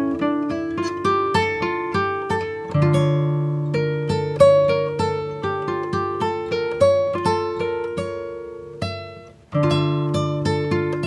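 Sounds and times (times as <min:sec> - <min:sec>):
plucked guitar music: 0:00.0 - 0:11.0.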